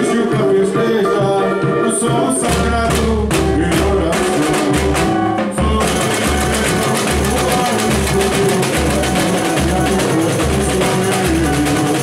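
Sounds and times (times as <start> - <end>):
bass drums beating: 0.0 - 12.0
snare and hand percussion: 0.0 - 12.0.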